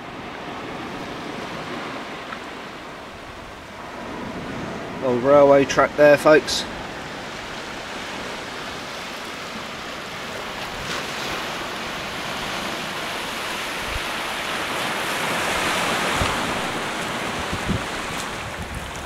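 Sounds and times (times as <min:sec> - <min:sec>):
wind gusts on microphone: 0:00.0 - 0:19.0
small waves washing over pebbles: 0:06.7 - 0:19.0.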